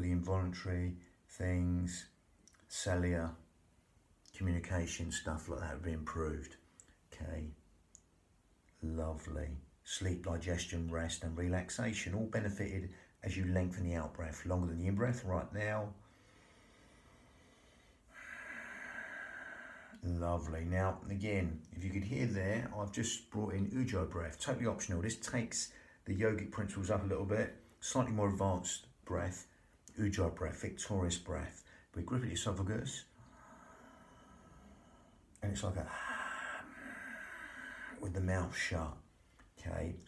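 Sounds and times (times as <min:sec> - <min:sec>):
faint steady hum: 0:00.0 - 0:40.0
slow breath hissing in throat: 0:16.1 - 0:20.0, 0:33.2 - 0:38.0.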